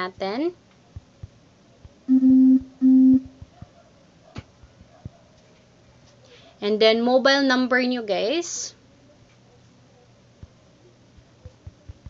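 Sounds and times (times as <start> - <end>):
woman humming: 2.1 - 3.3.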